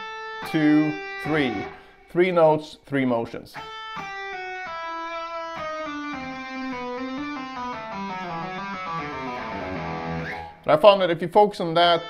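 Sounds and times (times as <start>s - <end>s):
electric guitar legato run: 3.7s - 10.6s.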